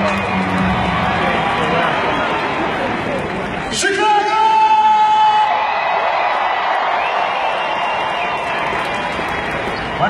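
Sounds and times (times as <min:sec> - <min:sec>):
crowd cheering and clapping: 0:00.0 - 0:10.0.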